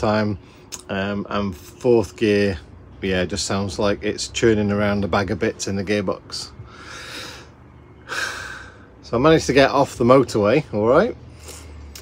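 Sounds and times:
man breathing: 6.6s - 9.0s.

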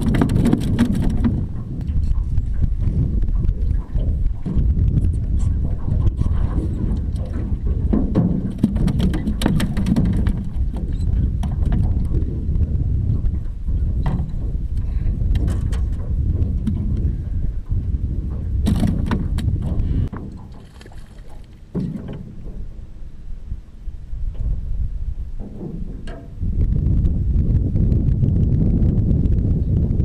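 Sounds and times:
sharp clicks and knocks: 0.0s - 2.7s, 6.6s - 12.2s, 14.0s - 17.1s, 18.6s - 22.6s, 25.4s - 26.4s
wind rumbling on microphone: 0.0s - 30.0s.

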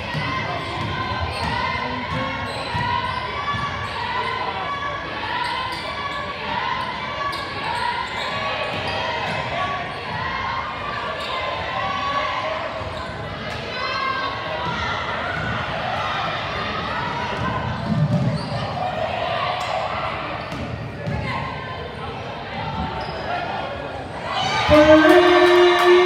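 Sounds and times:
players and spectators voices: 0.0s - 26.0s.

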